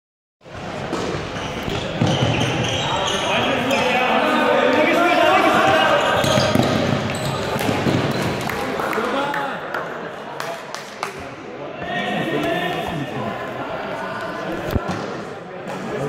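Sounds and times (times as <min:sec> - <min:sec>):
players shouting: 0:02.7 - 0:08.0.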